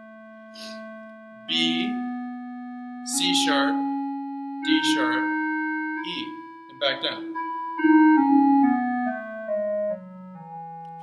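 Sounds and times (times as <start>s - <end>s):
electronic keyboard descending scale: 0.0s - 11.0s.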